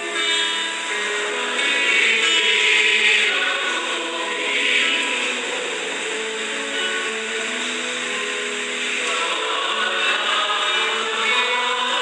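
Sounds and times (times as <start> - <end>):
person singing psalm: 0.0 - 7.6, 9.0 - 12.0
guitar accompaniment: 0.0 - 12.0
steady hiss: 0.0 - 12.0.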